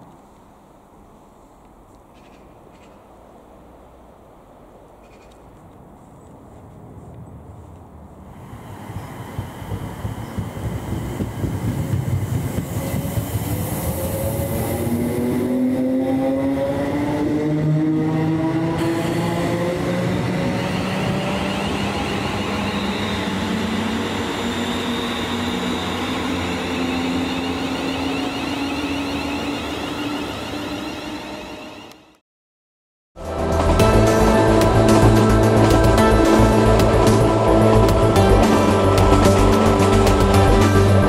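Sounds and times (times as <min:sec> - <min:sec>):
train wheels rumbling on rail: 0:06.4 - 0:32.2, 0:33.4 - 0:41.0.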